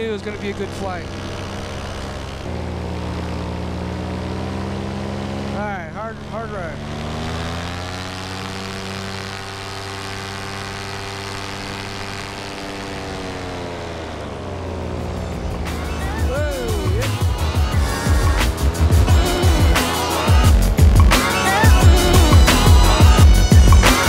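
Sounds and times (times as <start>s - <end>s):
paramotor engine running: 0.0s - 24.0s
music with heavy beat: 15.7s - 24.0s.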